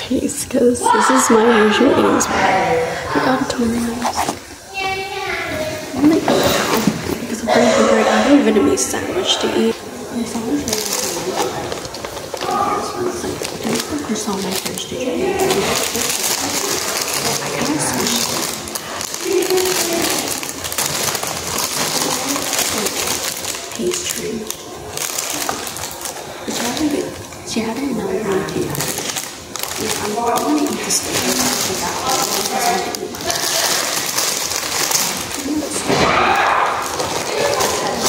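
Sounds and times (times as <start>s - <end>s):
paper wrapping crinkling: 3.2s - 4.9s, 8.5s - 38.0s.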